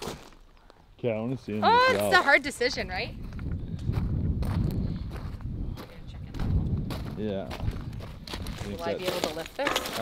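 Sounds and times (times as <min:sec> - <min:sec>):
footsteps on loose gravel: 0:00.0 - 0:00.5, 0:03.1 - 0:10.0
wind rumble on microphone: 0:02.7 - 0:09.0.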